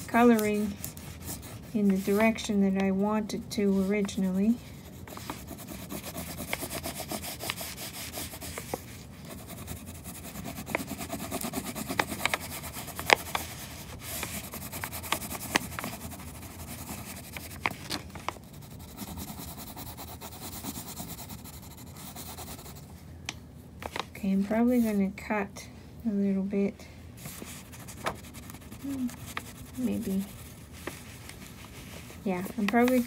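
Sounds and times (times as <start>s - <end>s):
wax crayon scribbling on paper: 0.0s - 2.6s, 3.6s - 17.6s, 18.4s - 22.8s, 27.3s - 30.6s, 32.0s - 33.0s.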